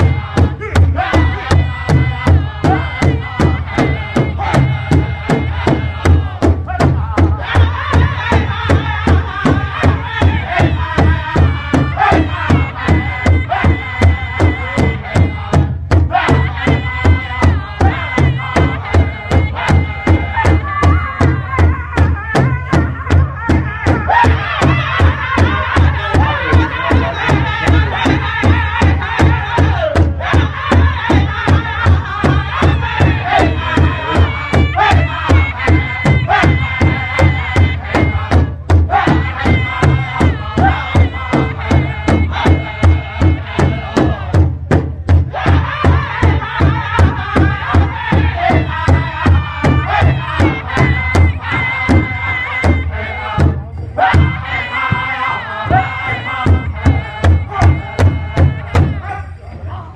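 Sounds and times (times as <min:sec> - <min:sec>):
large drum steady beat: 0:00.0 - 0:59.1
group singing in unison: 0:00.0 - 0:59.9.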